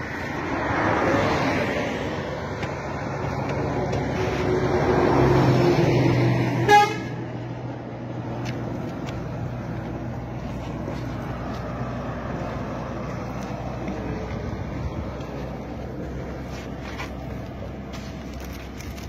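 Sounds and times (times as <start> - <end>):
steady road noise: 0.0 - 19.0
vehicle engine passing: 0.0 - 19.0
short horn toot: 6.6 - 7.2.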